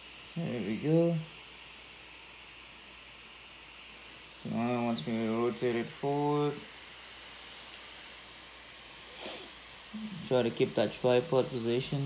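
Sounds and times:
faint hiss with high whine: 0.0 - 12.0.

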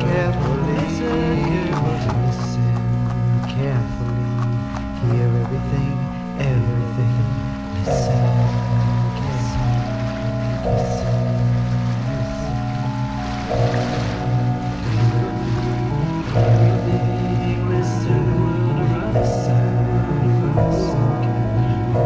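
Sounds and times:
low drone: 0.0 - 22.0
organ-like electronic chords: 0.0 - 22.0
hissing wash of noise: 5.8 - 22.0.

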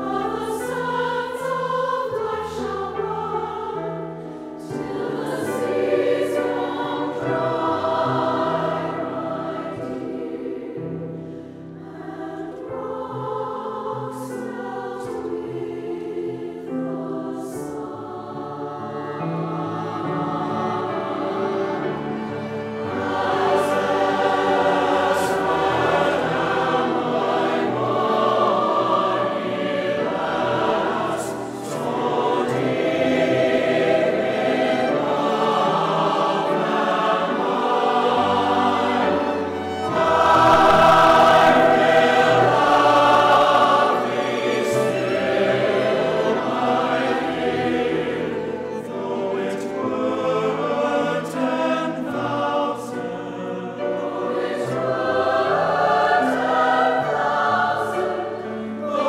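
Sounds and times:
choir singing held chords: 0.0 - 59.0.

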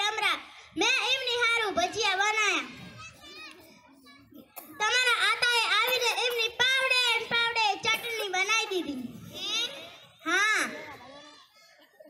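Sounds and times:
child's high voice: 0.0 - 12.0
faint background voices: 2.7 - 5.0.

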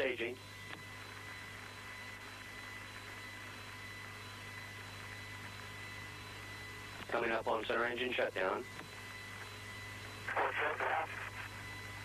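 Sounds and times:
low mains hum: 0.0 - 12.0.

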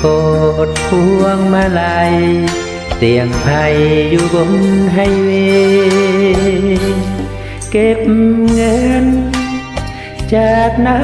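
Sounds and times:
karaoke backing track: 0.0 - 11.0
person singing: 0.0 - 11.0.

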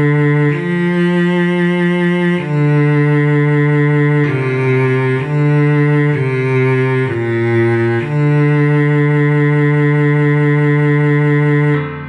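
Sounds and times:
cello bowed note: 0.0 - 12.0.

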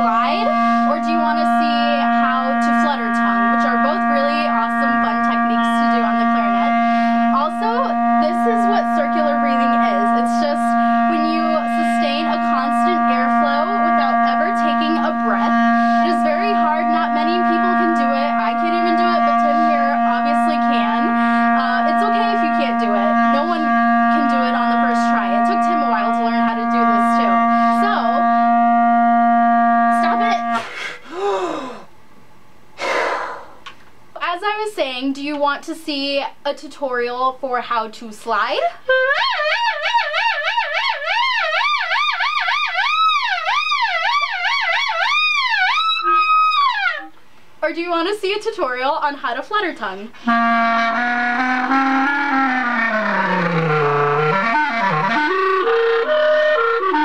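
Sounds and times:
clarinet holding low note: 0.0 - 31.9, 38.5 - 47.2, 49.8 - 57.0.

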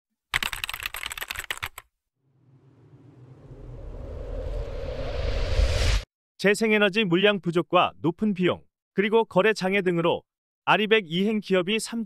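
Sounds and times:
keyboard typing clicks: 0.4 - 1.8
smooth rising swell: 2.2 - 6.1.

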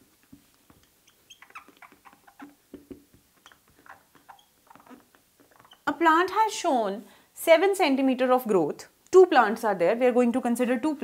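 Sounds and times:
marker squeaking on whiteboard: 0.3 - 6.0.

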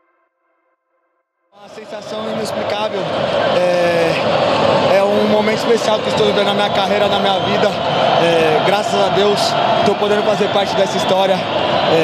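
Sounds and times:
loud mix of voices and noise: 1.6 - 12.0.

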